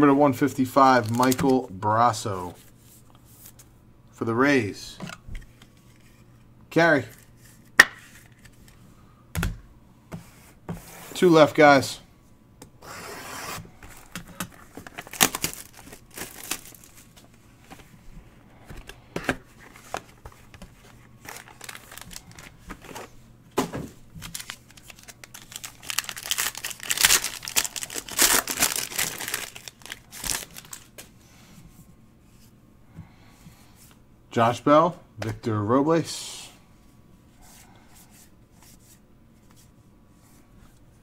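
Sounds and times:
cards rustling: 0.8 - 1.7, 12.8 - 18.0, 18.6 - 23.2, 24.2 - 31.1
wrapper tearing and crinkling: 14.7 - 17.1, 21.2 - 23.0, 24.2 - 30.9.

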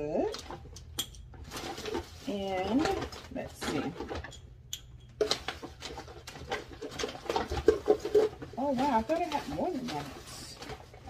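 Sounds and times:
packaging rustling: 1.4 - 4.3, 5.2 - 11.0.

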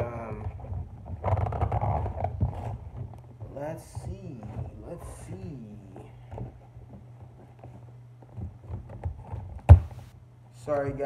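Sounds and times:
steady low hum: 0.0 - 11.0
cardboard box taps and scuffs: 9.7 - 10.1.

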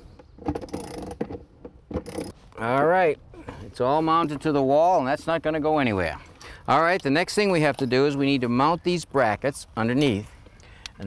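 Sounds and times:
ratchet wrench pawl clicking: 2.0 - 2.3.

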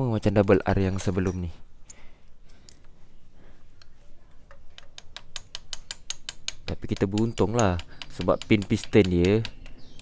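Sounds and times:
metallic clinks of engine parts: 1.0 - 3.0.

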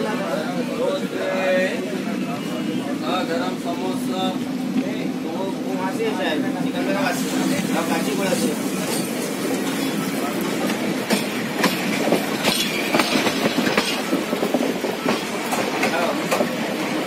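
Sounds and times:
train wheels rumbling on rail: 0.0 - 17.0
wheels clacking on rail joints: 8.3 - 17.0.

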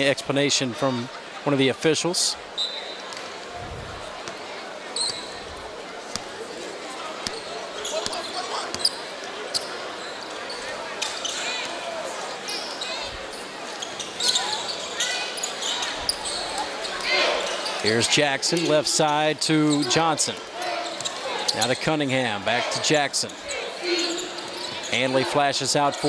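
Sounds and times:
crowd chatter: 0.0 - 26.0
sneakers squeaking: 5.0 - 6.6, 7.2 - 11.7, 12.5 - 17.8, 19.7 - 21.8, 23.2 - 25.0.

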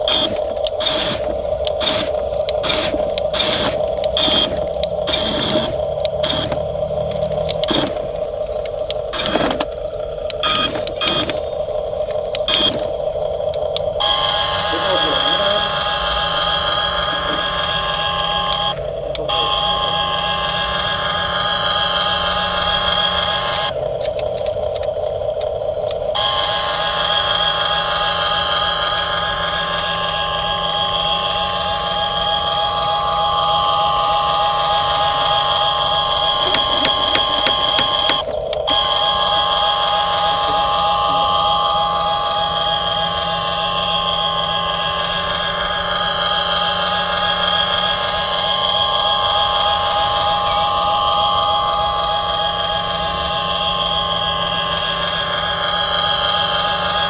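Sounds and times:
toy excavator motors whining: 0.0 - 57.0.

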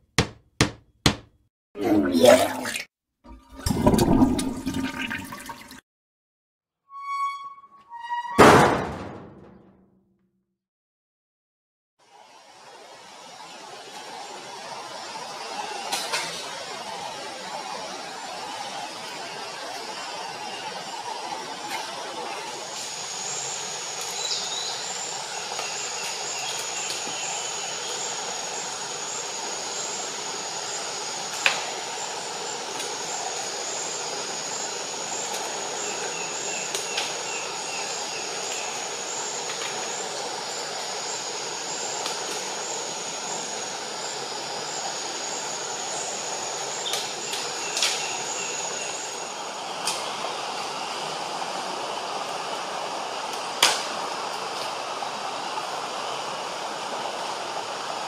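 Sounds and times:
forest hiss: 12.1 - 58.0
pulsing insect trill: 22.5 - 49.7.

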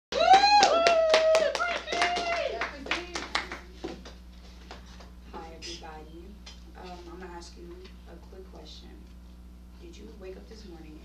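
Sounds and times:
person whooping cheer: 0.1 - 2.6
hands clapping: 0.1 - 4.8.

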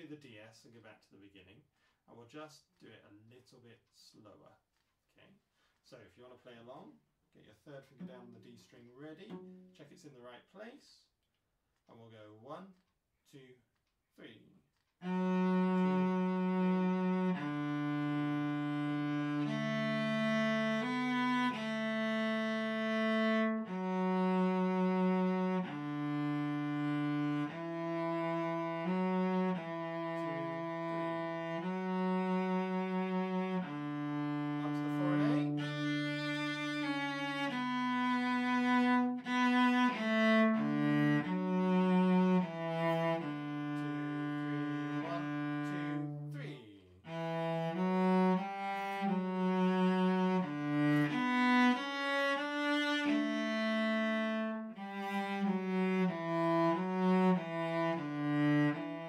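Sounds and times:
cello playing slow melody: 7.9 - 8.4, 9.1 - 9.8, 15.0 - 46.4, 47.0 - 59.0.

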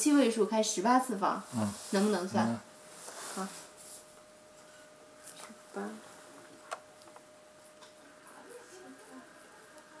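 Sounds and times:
woman speaking: 0.0 - 2.7, 5.7 - 6.0, 8.1 - 10.0.

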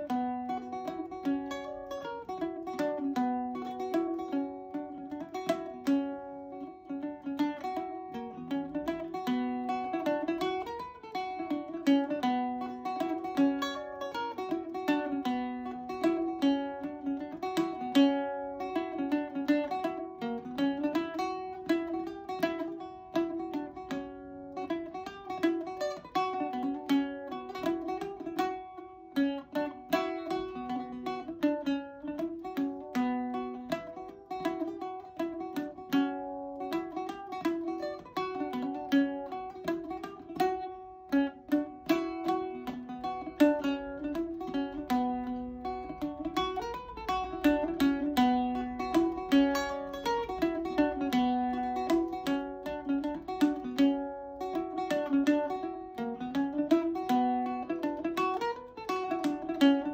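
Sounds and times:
bouzouki plucked reel melody: 0.0 - 59.9.

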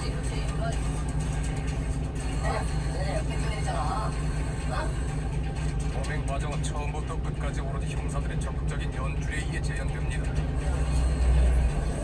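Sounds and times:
indistinct broadcast voices: 0.0 - 12.0
truck engine idling: 0.0 - 12.0.

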